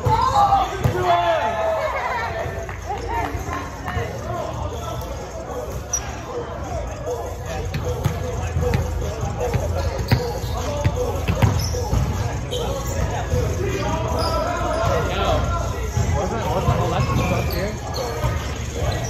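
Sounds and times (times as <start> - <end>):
players calling out: 0.0 - 19.0
sneaker squeaks on hardwood: 9.5 - 13.2.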